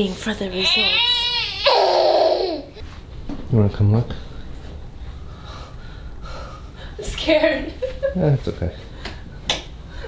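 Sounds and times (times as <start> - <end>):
person breathing: 5.0 - 7.0.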